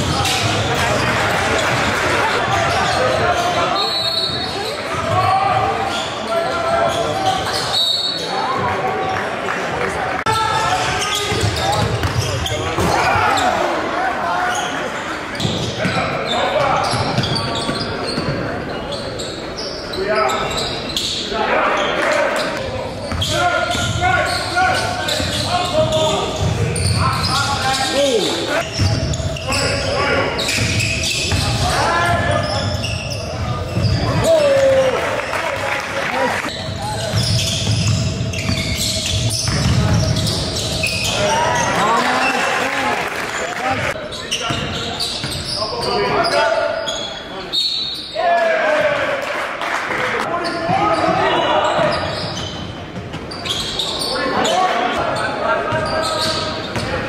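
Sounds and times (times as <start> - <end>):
sneakers squeaking: 0.0 - 9.3, 10.3 - 35.4, 36.3 - 42.5, 43.6 - 48.9, 50.2 - 57.0
voices in echoing hall: 0.0 - 57.0.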